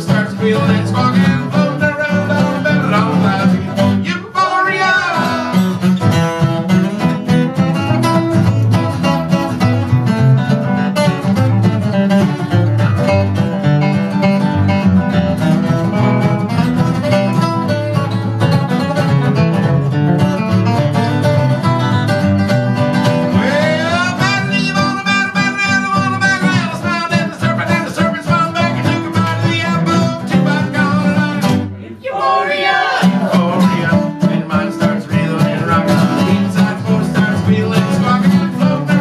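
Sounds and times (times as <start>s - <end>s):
acoustic guitars playing: 0.0s - 39.0s.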